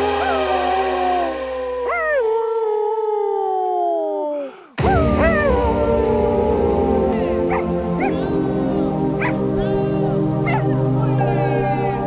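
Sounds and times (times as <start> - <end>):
dog howling: 0.0 - 4.4, 5.0 - 12.0.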